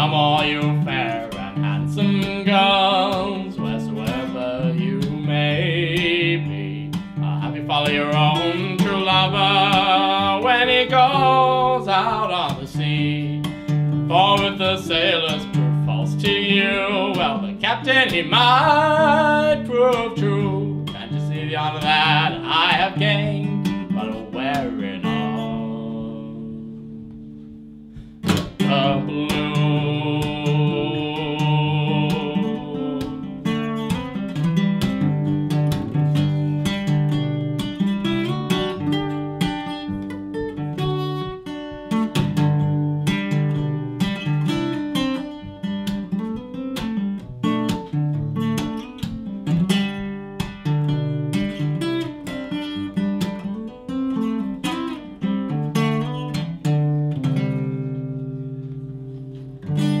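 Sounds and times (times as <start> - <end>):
fingerpicked acoustic guitar: 0.0 - 60.0.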